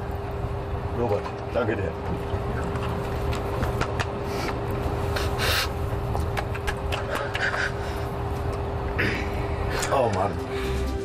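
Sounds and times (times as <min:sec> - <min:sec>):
aircraft systems hum: 0:00.0 - 0:11.0.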